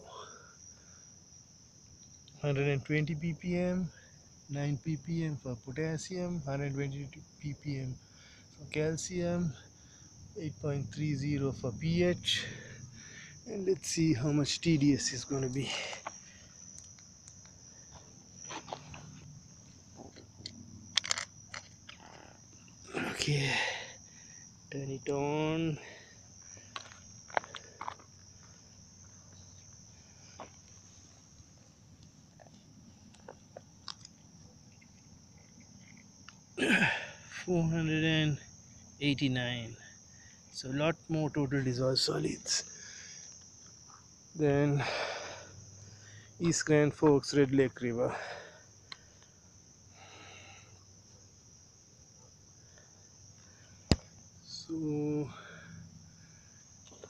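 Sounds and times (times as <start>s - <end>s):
crickets chirping: 0.0s - 57.0s.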